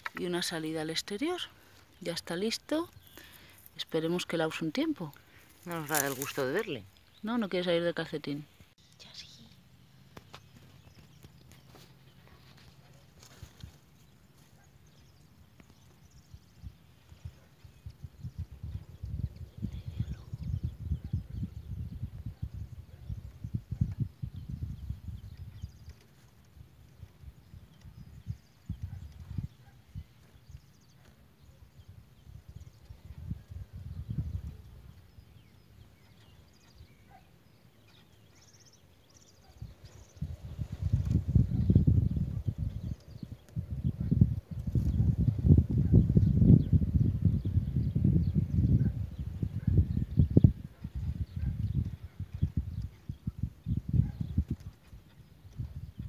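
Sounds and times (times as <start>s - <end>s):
wind buffeting microphone: 14.9s - 30.8s, 31.7s - 36.9s, 39.5s - 56.0s.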